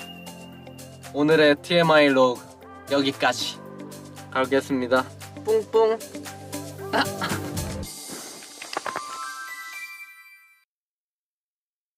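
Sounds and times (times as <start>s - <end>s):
electronic chime jingle: 0.0s - 2.4s, 9.1s - 10.7s.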